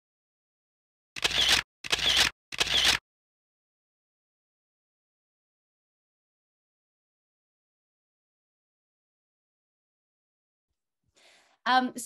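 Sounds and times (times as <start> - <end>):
camera shutter clicks: 1.2 - 3.0.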